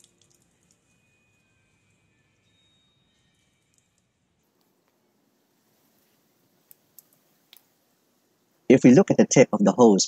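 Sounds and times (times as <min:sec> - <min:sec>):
faint plastic clicks: 0:06.0 - 0:07.7.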